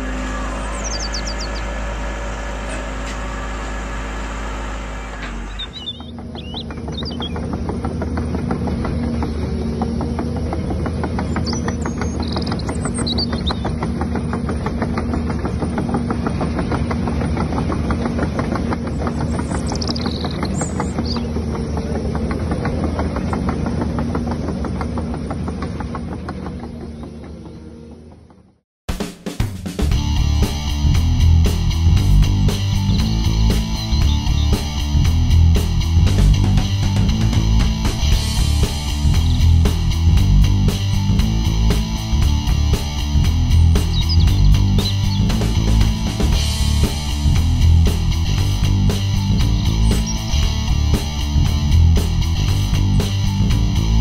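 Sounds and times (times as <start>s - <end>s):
birds chirping: 0.0s - 28.5s, 30.5s - 54.0s
crawler tracks rattling: 0.0s - 28.5s, 30.5s - 54.0s.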